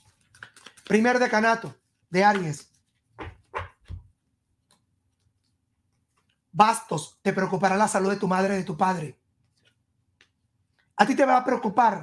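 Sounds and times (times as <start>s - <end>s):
card deck tapped on desk: 3.2s - 4.1s.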